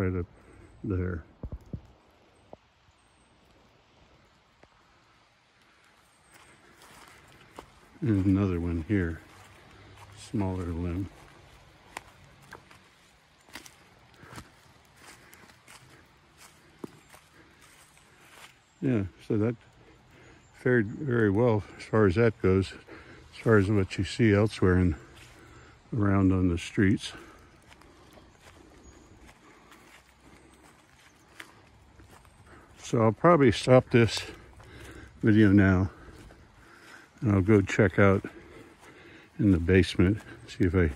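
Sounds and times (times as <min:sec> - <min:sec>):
low hiss: 0:00.0 - 0:13.5
footsteps on wet grass and snow: 0:00.0 - 0:40.9.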